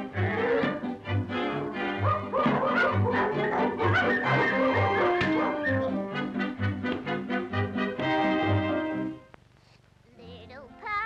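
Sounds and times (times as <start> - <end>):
brass orchestral cartoon music: 0.0 - 9.2.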